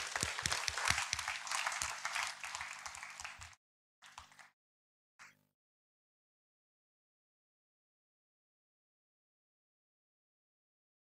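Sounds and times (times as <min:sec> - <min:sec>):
audience applauding: 0:00.0 - 0:04.6.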